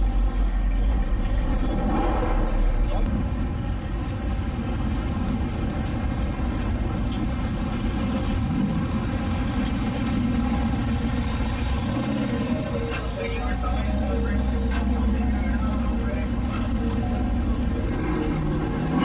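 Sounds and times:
car engines driving slowly past: 0:00.0 - 0:19.0.

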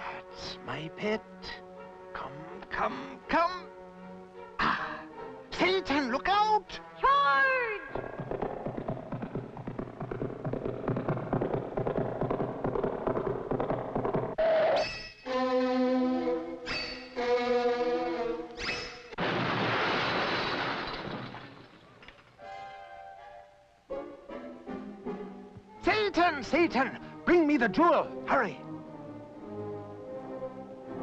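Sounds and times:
orchestral cartoon score: 0:00.0 - 0:07.9, 0:14.4 - 0:18.6.

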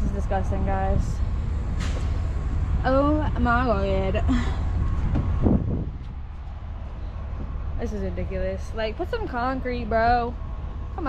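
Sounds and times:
diesel truck engine idling: 0:00.0 - 0:11.0.

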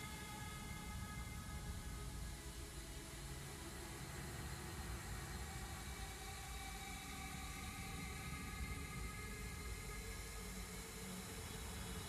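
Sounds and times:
faint steady tones: 0:00.0 - 0:12.0
low hiss and hum: 0:00.0 - 0:12.0.

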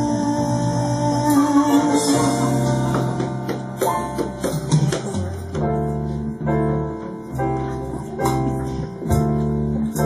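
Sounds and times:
held keyboard chords: 0:00.0 - 0:10.0
light percussion: 0:01.3 - 0:10.0.

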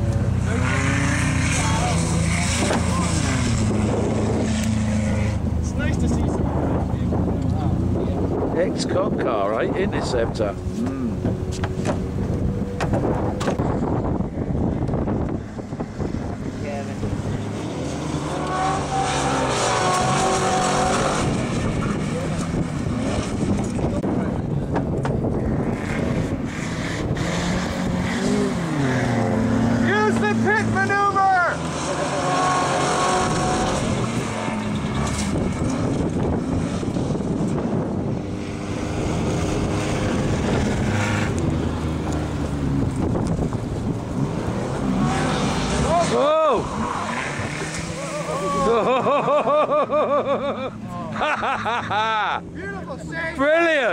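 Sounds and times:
car engine revving: 0:00.0 - 0:53.9.

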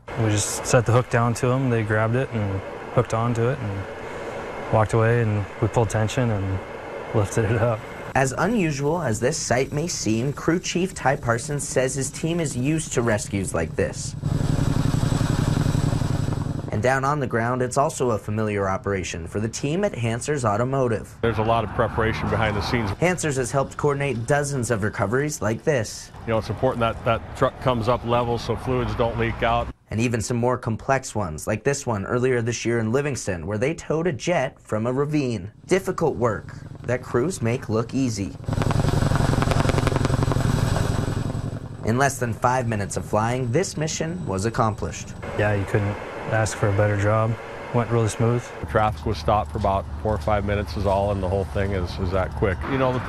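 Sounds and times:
man speaking: 0:00.0 - 0:06.6, 0:07.2 - 0:14.2, 0:16.7 - 0:38.4, 0:41.8 - 0:53.0
helicopter rotor beat: 0:00.0 - 0:21.4, 0:22.2 - 0:29.2, 0:35.0 - 0:53.0
low engine drone: 0:00.0 - 0:29.8, 0:35.0 - 0:53.0.

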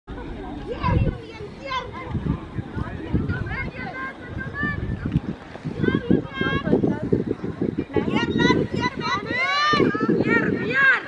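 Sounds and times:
girls calling out and chattering: 0:00.1 - 0:11.0.

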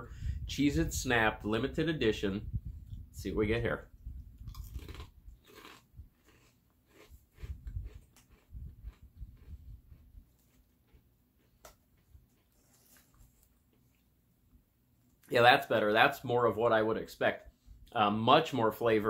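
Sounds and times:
crackers being chewed: 0:04.4 - 0:14.1.

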